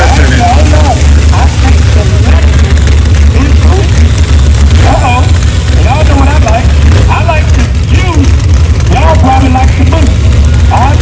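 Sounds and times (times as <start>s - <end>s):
indistinct voices: 0.0s - 4.1s, 4.7s - 11.0s
race car engines rumbling: 0.0s - 11.0s.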